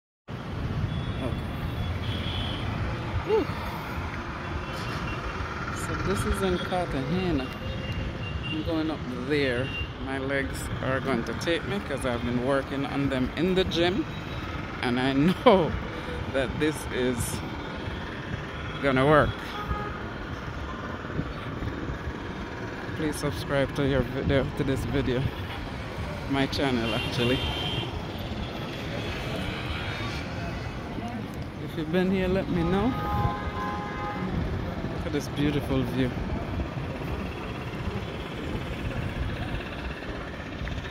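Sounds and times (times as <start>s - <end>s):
distant city traffic rumble: 0.3s - 40.9s.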